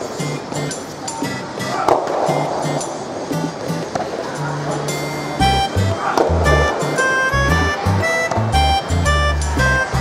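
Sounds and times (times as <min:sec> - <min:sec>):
background music with bass line: 0:05.4 - 0:10.0.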